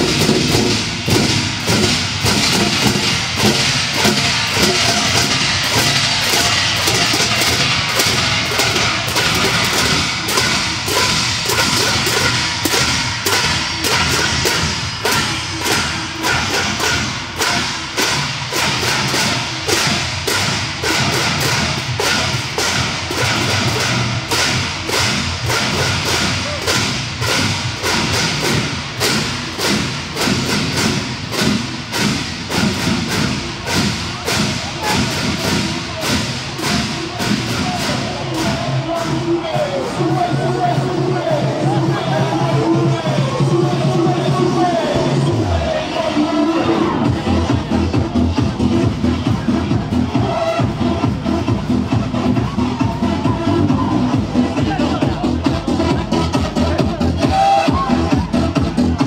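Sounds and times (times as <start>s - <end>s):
parade drums playing: 0.0s - 59.0s.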